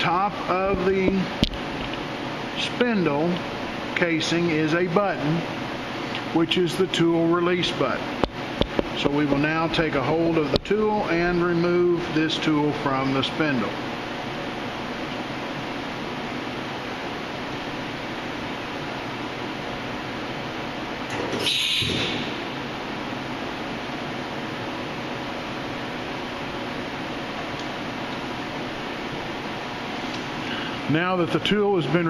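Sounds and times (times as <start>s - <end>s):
steady background hum: 0.0s - 32.0s
pneumatic tool release air rush: 21.3s - 22.4s.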